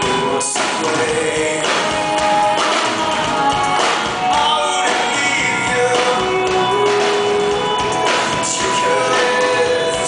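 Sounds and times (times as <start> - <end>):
live rock band playing: 0.0 - 10.0
man singing lead vocal: 0.0 - 10.0.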